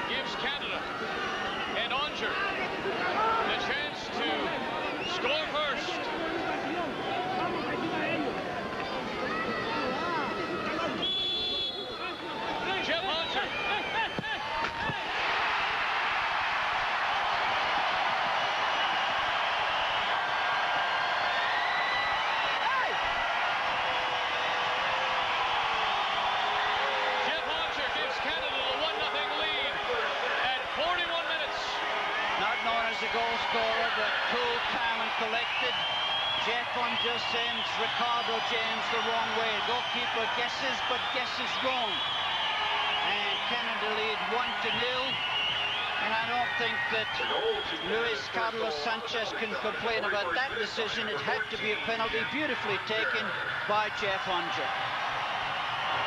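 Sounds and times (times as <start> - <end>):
stadium crowd noise: 0.0 - 56.0.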